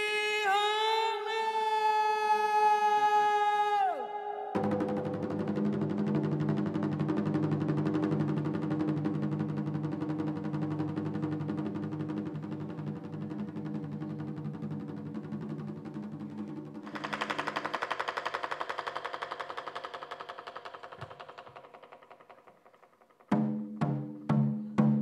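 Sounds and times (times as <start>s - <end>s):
percussion music: 4.5s - 25.0s
rapid drum roll: 4.6s - 25.0s.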